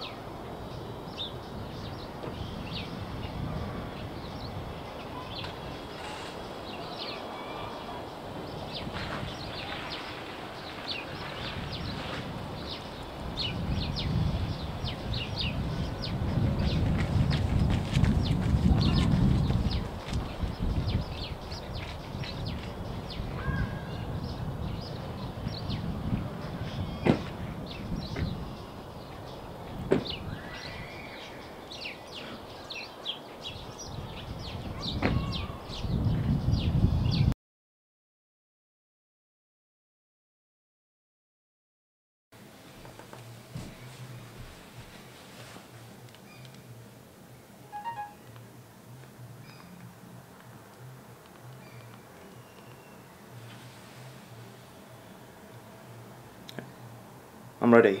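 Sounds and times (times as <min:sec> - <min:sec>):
small birds chirping: 0:00.0 - 0:37.3, 0:46.2 - 0:46.8, 0:49.4 - 0:49.9, 0:50.8 - 0:53.6.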